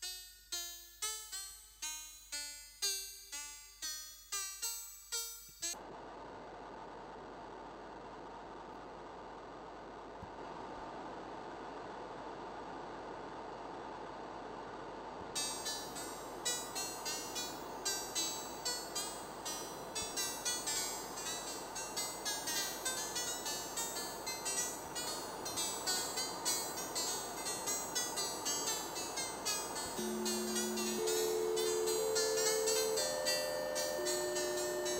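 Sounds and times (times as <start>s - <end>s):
synthesized noise hiss: 0.0s - 34.9s
plucked synthesized notes: 15.4s - 34.9s.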